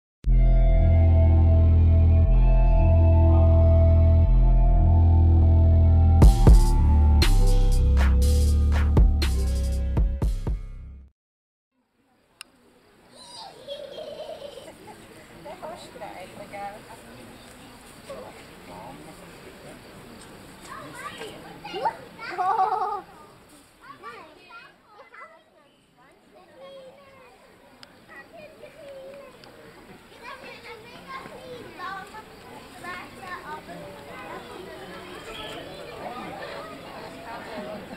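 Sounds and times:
children chattering: 12.1s - 37.9s.

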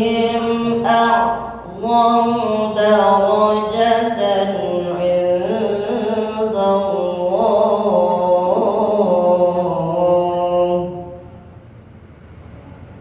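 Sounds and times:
recitation through loudspeaker: 0.0s - 11.8s.

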